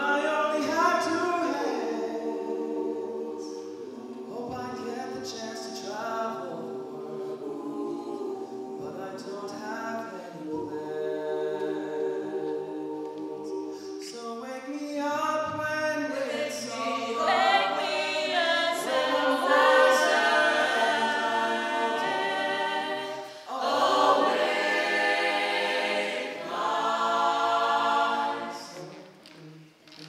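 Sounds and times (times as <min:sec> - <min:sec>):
a cappella group singing: 0:00.0 - 0:30.0.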